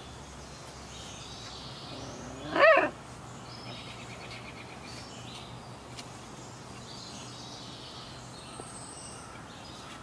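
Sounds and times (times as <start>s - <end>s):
birds chirping faintly: 0.0s - 10.0s
puppy yelping: 2.3s - 3.0s.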